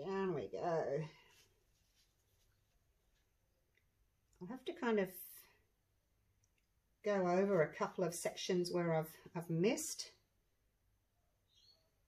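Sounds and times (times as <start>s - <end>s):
woman speaking: 0.0s - 1.3s, 4.4s - 5.6s, 7.0s - 10.2s.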